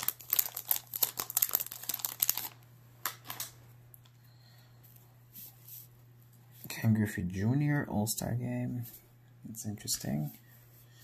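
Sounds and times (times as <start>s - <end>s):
cards rustling: 0.0s - 3.6s
plastic wrapper tearing and crinkling: 0.0s - 3.6s.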